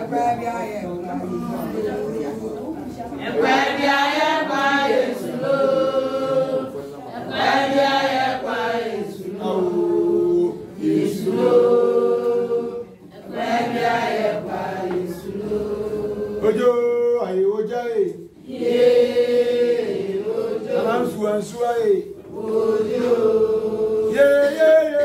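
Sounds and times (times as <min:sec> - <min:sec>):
group singing: 0:00.9 - 0:17.0, 0:18.2 - 0:25.0.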